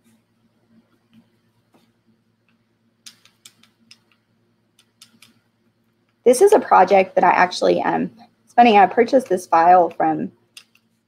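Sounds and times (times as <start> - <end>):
faint taps and clicks: 0.8 - 6.2.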